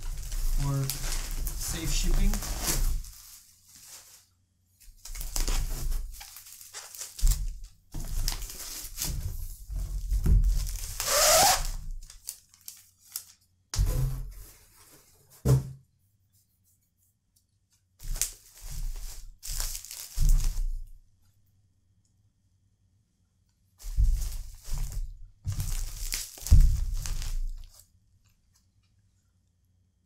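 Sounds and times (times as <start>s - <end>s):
cardboard and plastic wrap rustling: 0.0s - 15.7s, 18.0s - 21.0s, 23.8s - 27.9s
packages thudding on wooden table: 23.8s - 27.6s.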